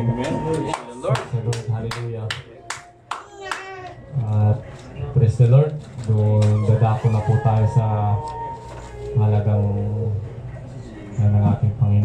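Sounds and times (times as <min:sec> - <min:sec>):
hand claps: 0:00.2 - 0:04.0.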